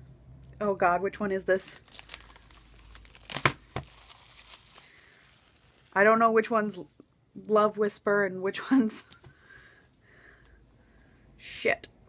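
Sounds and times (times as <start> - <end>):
packaging crinkling: 1.6 - 6.0.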